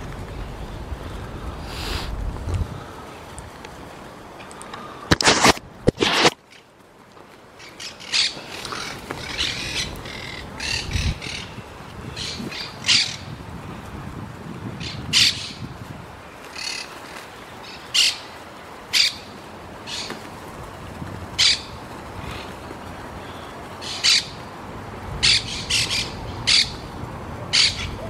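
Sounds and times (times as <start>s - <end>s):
pigeons pecking and shuffling: 8.4s - 10.6s.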